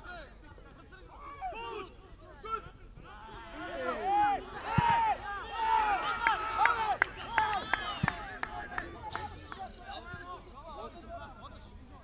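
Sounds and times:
players shouting calls: 0.0 - 11.7.

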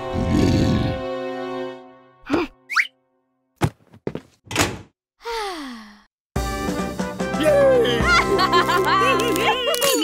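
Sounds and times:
cartoon thunks: 3.6 - 4.9.

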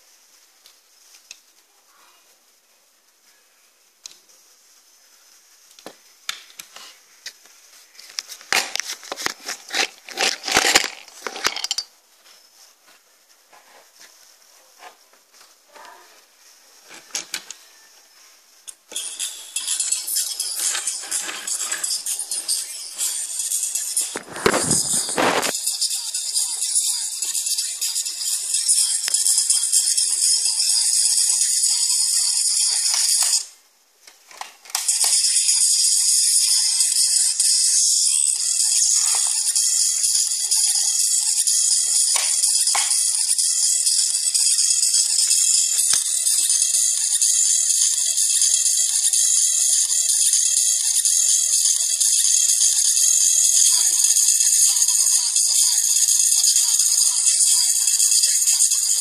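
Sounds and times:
tinny music from tiny speaker: 6.8 - 33.6, 34.2 - 59.0
thin high-pitched tone: 18.9 - 33.5.

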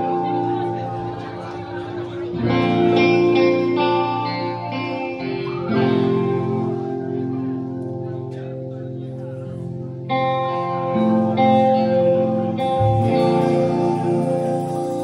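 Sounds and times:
electric guitars ringing chords: 0.0 - 15.0.

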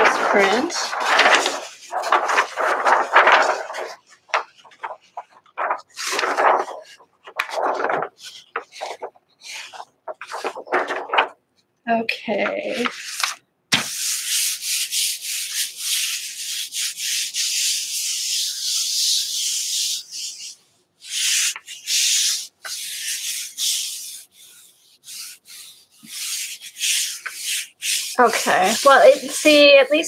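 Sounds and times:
hands rubbing paper: 0.0 - 11.4, 12.3 - 30.0.

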